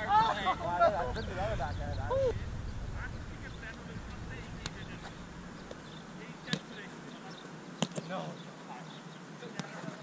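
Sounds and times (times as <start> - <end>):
low outdoor rumble: 0.0 - 7.3
faint voices: 0.0 - 10.0.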